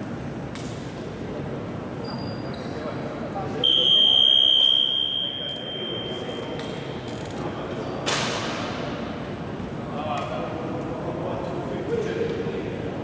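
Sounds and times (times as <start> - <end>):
referee whistle blast: 3.6 - 6.4.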